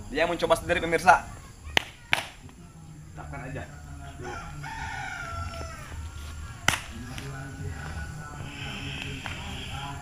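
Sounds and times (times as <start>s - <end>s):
sharp crack: 1.7s - 2.5s, 6.6s - 7.0s
rooster crowing: 3.6s - 6.6s.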